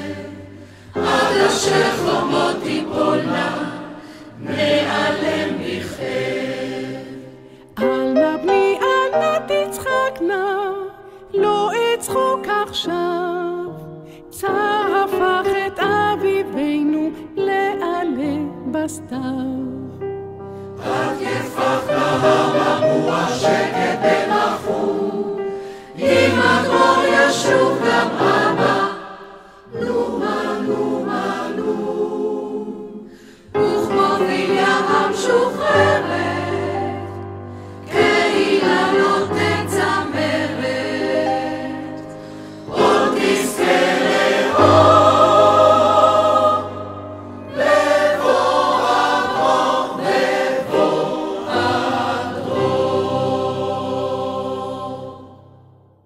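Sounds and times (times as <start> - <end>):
mixed choir singing: 0.0 - 10.3, 20.7 - 56.0.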